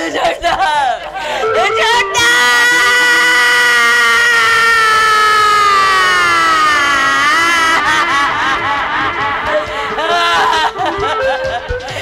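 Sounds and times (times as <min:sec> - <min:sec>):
person crying out loudly: 0:01.4 - 0:11.4.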